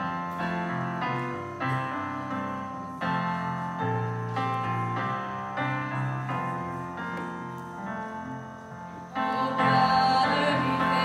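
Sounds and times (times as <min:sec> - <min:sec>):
piano playing hymn chords: 0:00.0 - 0:11.0.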